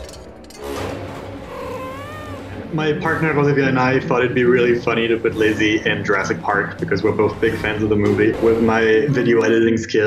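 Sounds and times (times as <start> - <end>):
film score music: 0.0 - 9.5
cat meowing: 1.4 - 2.7.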